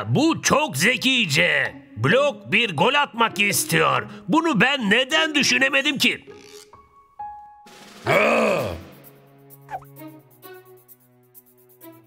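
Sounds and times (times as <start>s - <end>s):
soft background music: 0.0s - 12.0s
man making drawn-out wordless sound: 8.0s - 9.0s.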